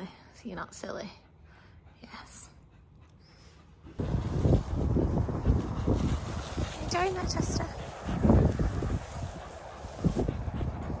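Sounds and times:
dog panting: 0:00.7 - 0:04.0, 0:04.7 - 0:11.0
low rumble: 0:03.9 - 0:11.0.

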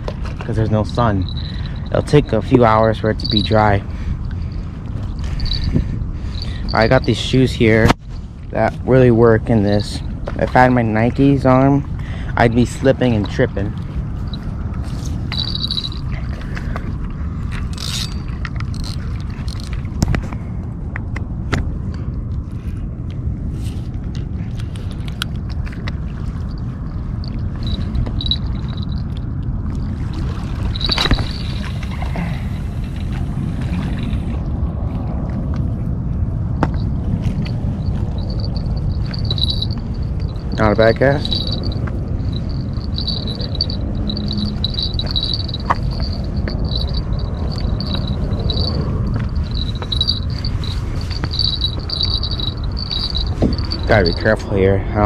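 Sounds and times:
steady low rumble: 0:00.0 - 0:55.0
small bell tinkling: 0:00.9 - 0:07.8, 0:09.7 - 0:10.6, 0:13.0 - 0:16.8, 0:17.6 - 0:19.8, 0:26.3 - 0:32.2, 0:36.6 - 0:55.0.

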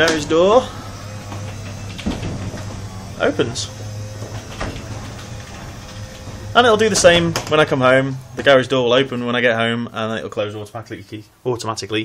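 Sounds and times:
garage door opener humming: 0:00.0 - 0:10.7.

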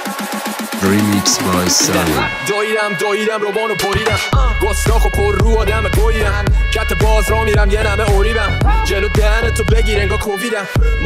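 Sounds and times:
rapping over a beat: 0:00.7 - 0:11.0
deep bass and kick drum: 0:04.4 - 0:10.2.

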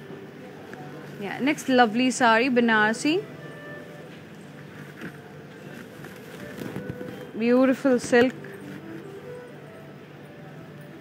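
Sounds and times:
faint steady hum: 0:00.0 - 0:11.0
soft rustle: 0:04.6 - 0:07.4.

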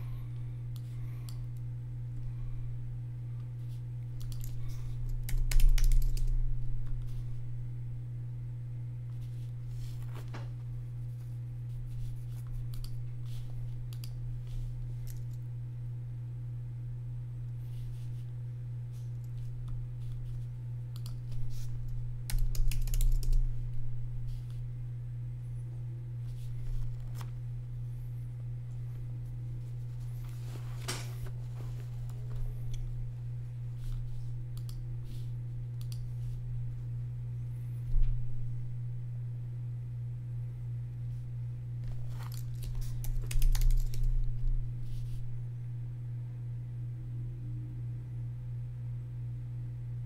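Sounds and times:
low electrical hum: 0:00.0 - 0:50.0
computer keyboard typing: 0:04.2 - 0:06.4, 0:22.3 - 0:23.5, 0:42.2 - 0:44.2.

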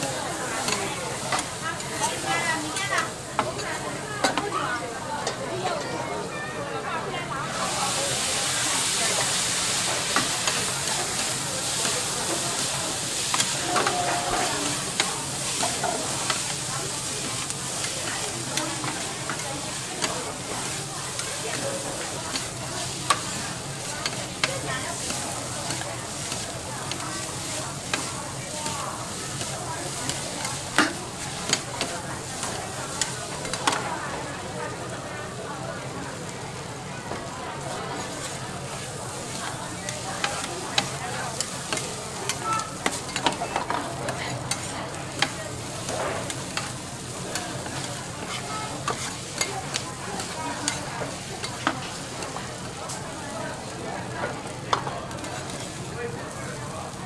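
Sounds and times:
food sizzling on griddle: 0:00.0 - 0:57.0
spatulas clacking on griddle: 0:00.6 - 0:04.5, 0:09.8 - 0:33.9, 0:39.3 - 0:52.9, 0:54.0 - 0:55.7
metal spatulas scraping griddle: 0:10.1 - 0:33.8, 0:40.2 - 0:50.9.

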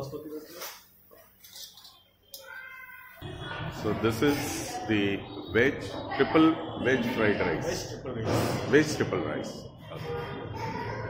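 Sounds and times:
steady background noise: 0:00.0 - 0:11.0
man speaking: 0:03.8 - 0:10.2.

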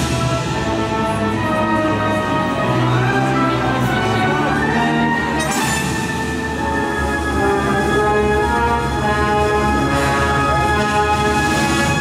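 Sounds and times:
orchestral music with held chords: 0:00.0 - 0:12.0.

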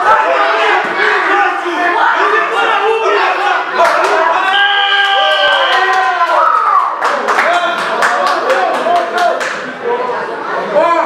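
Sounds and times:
long drawn-out shout: 0:00.0 - 0:07.0
spectators shouting encouragement: 0:00.0 - 0:07.7.

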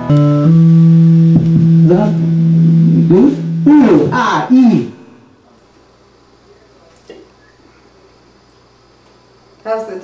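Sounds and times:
electric guitars and bass note: 0:00.0 - 0:05.4.

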